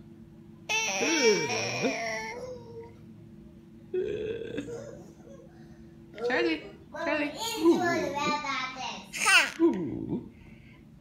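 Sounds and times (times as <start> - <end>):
baby vocal sound: 0.7 - 3.0.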